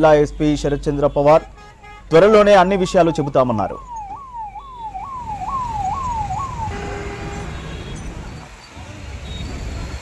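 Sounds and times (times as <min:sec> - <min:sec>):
low traffic rumble: 0:00.0 - 0:10.0
police siren sweeping: 0:02.4 - 0:08.4.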